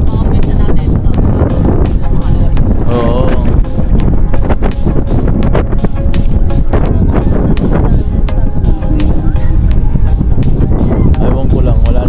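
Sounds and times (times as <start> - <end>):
music with singing voice: 0.0 - 12.0
wind buffeting microphone: 0.0 - 12.0.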